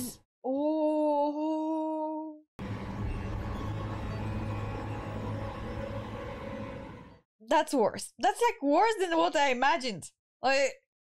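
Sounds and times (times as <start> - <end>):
dark soundtrack music with drone: 2.6 - 7.2.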